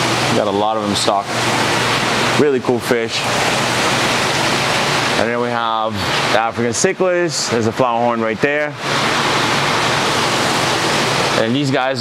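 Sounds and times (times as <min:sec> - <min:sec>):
loud rushing noise: 0:08.6 - 0:11.7.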